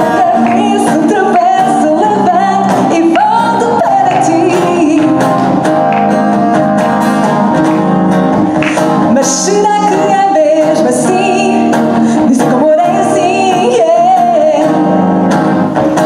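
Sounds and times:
woman singing into a microphone: 0.0s - 5.7s, 8.7s - 15.2s
strummed acoustic guitar: 0.0s - 16.0s.

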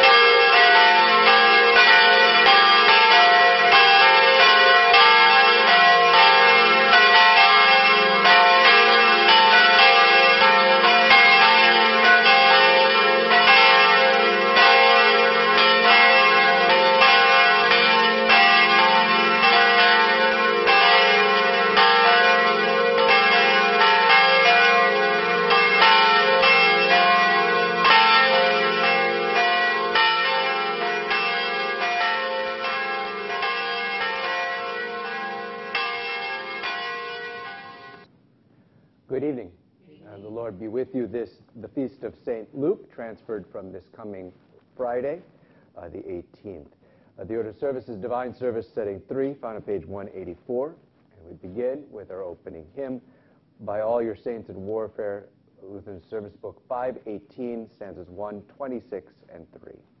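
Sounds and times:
church bells ringing: 0.0s - 38.1s, 40.0s - 41.0s, 41.9s - 46.6s, 47.2s - 58.6s, 59.3s - 59.8s.

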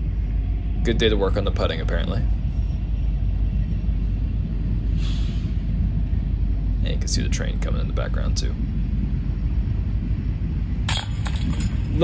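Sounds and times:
steady low rumble: 0.0s - 12.0s
disc striking basket chains: 10.9s - 12.0s.

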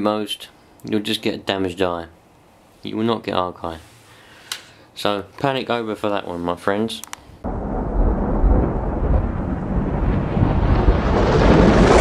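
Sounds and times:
loud deep rumbling: 7.4s - 12.0s.

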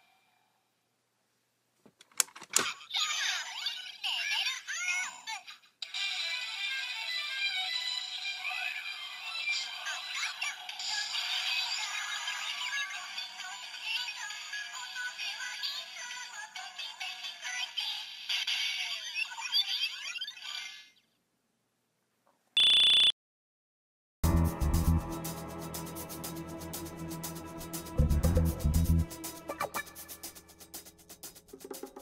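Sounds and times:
loud steady beep: 22.6s - 23.2s.

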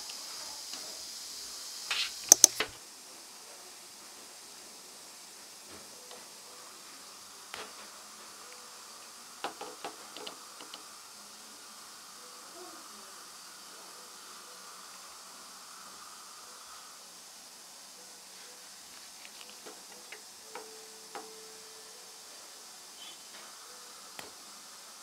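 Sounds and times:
faint steady hiss: 0.0s - 25.0s
metal instruments clicking: 2.2s - 2.7s.

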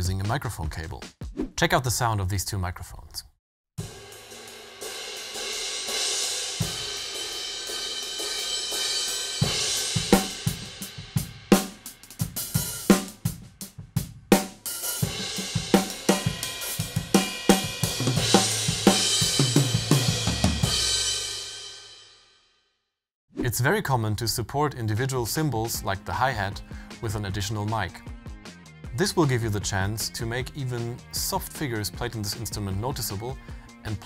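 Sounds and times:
cymbals and hi-hat ringing: 3.8s - 13.2s, 14.6s - 21.9s
snare tom and kick drum hits: 9.4s - 21.2s.

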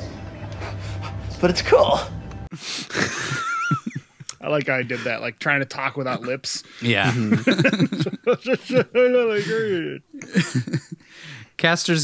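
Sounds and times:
low hum: 0.0s - 2.5s
man's wheezy laugh: 2.6s - 4.2s, 7.1s - 11.0s.

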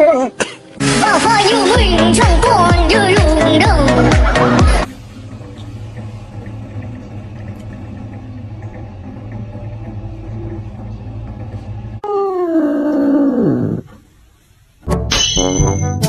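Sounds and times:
steady low hum: 1.7s - 14.8s.

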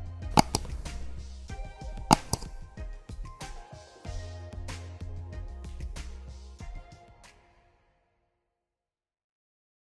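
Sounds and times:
background music: 0.0s - 8.2s
sharp clicks: 0.4s - 2.8s.

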